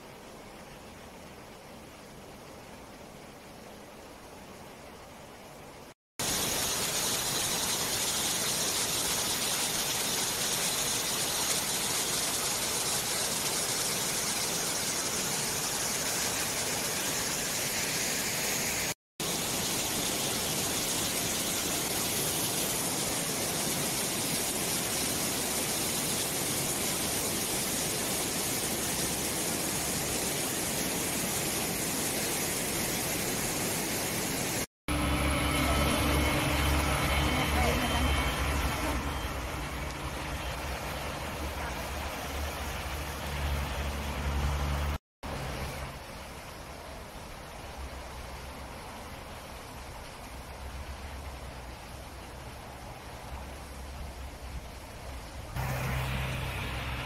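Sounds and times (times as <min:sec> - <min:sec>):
mountain stream rushing over rocks: 0:00.0 - 0:57.0
road traffic engine hum: 0:34.9 - 0:45.8, 0:55.6 - 0:57.0.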